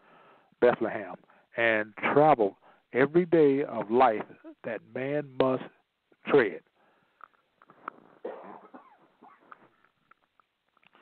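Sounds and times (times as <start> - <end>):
man coughing: 8.2 - 9.5.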